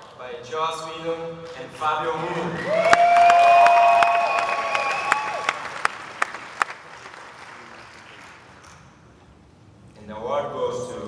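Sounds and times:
audience applauding: 0:02.5 - 0:08.6
person whooping: 0:02.6 - 0:05.6.

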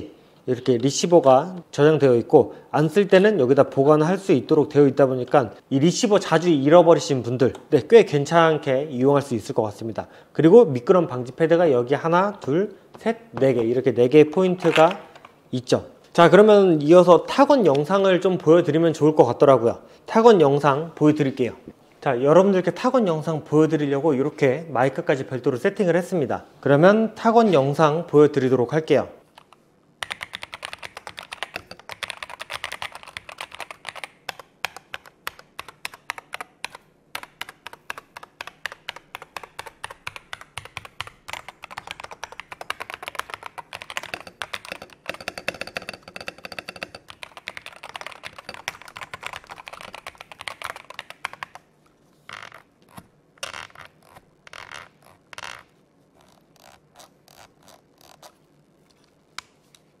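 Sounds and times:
mechanical keyboard typing: 0:29.4 - 0:51.6.

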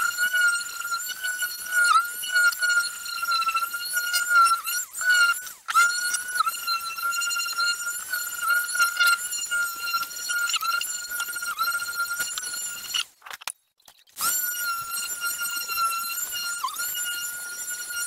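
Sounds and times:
orbital sander whining on wood: 0:00.0 - 0:13.0, 0:14.2 - 0:18.0.

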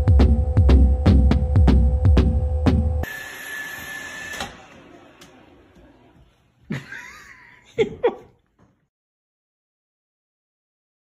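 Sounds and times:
robot vacuum whining: 0:03.0 - 0:05.8.

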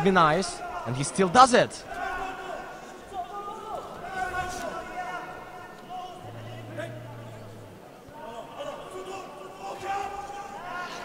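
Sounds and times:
distant voices calling out: 0:05.4 - 0:08.6
brief low hum: 0:06.2 - 0:08.0.

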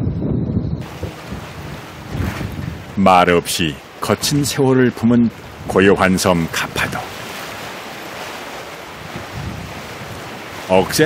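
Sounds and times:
wind buffeting microphone: 0:00.0 - 0:11.0
sea waves: 0:00.8 - 0:11.0.

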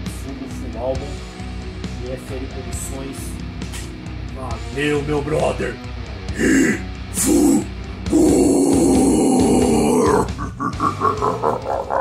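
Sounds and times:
music: 0:00.0 - 0:12.0
guttural death metal growl: 0:06.3 - 0:12.0
man laughing: 0:09.9 - 0:12.0.

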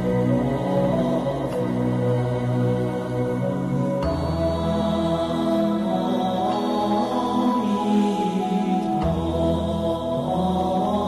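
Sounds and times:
slow devotional chant with music: 0:00.0 - 0:11.0.

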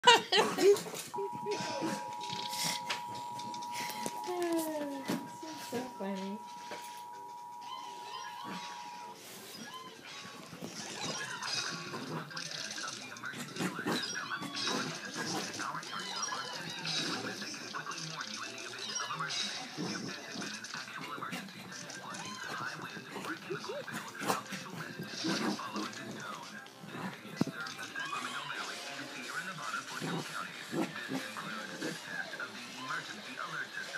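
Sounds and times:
person laughing: 0:00.0 - 0:02.1
dog whining high-pitched: 0:06.4 - 0:10.0.

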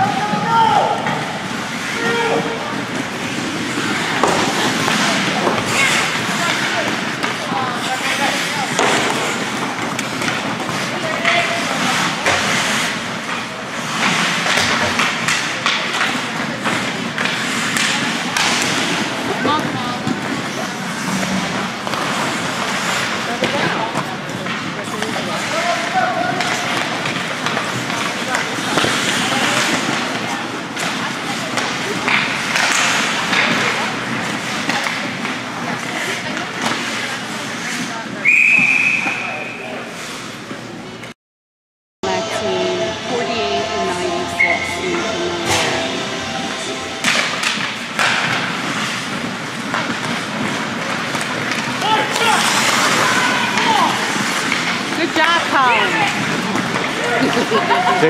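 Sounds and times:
skates and sticks on ice: 0:01.0 - 0:39.2, 0:47.1 - 0:57.9.

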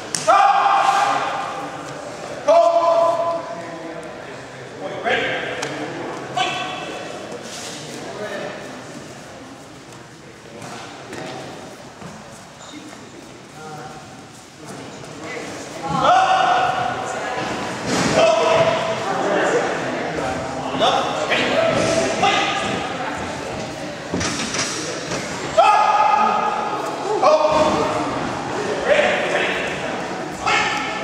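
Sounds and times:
people shouting and calling: 0:00.1 - 0:01.8, 0:02.4 - 0:03.5, 0:15.8 - 0:17.1, 0:25.4 - 0:28.2, 0:30.3 - 0:31.0.

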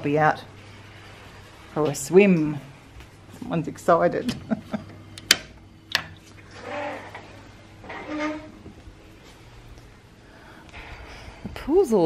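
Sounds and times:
glass door sliding on track: 0:00.6 - 0:03.0, 0:06.3 - 0:09.8.

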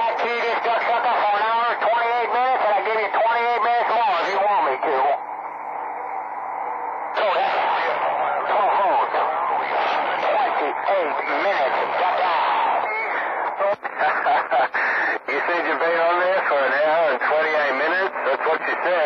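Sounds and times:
distorted voices over radio: 0:00.0 - 0:19.0
radio static hiss: 0:00.0 - 0:19.0.

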